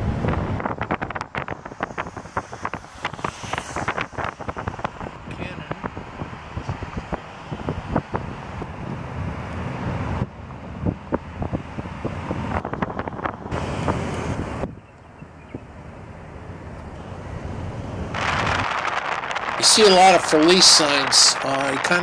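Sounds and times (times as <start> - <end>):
wind buffeting microphone: 0.0 - 15.9, 17.4 - 22.0
car road noise: 0.0 - 22.0.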